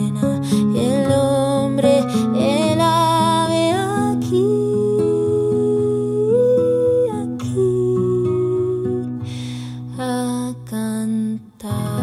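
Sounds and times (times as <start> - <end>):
acoustic guitar picking: 0.0 - 12.0.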